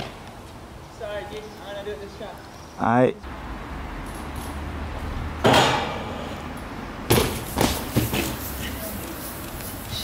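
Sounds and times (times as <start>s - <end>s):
bike crashing on concrete: 7.1s - 8.8s.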